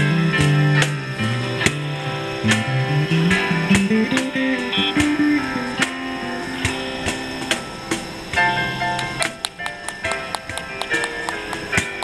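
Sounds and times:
plucked string notes: 0.0s - 12.0s
sharp percussive clicks: 2.4s - 12.0s.

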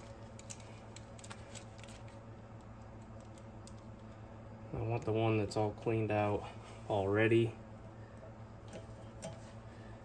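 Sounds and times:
small metal parts clicking: 0.0s - 2.2s.

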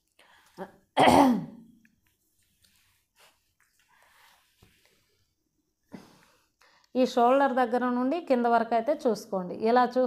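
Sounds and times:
woman clearing her throat: 1.0s - 1.6s.

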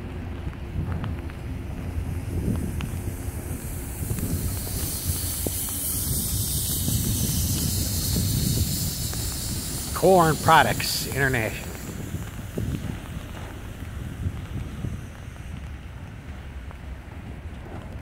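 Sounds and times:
train wheels rumbling on rail: 0.0s - 18.0s
hiss: 0.8s - 18.0s.

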